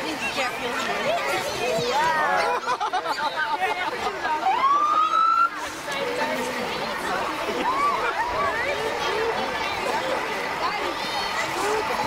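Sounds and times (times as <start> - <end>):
crowd chatter: 0.0 - 12.0
siren rising whoop: 4.5 - 5.6.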